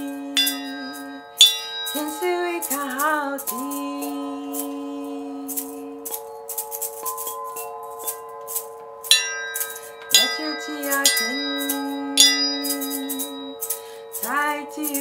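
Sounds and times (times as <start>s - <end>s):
chime bars ringing: 0.0s - 15.0s
hand rattle shaken: 0.0s - 15.0s.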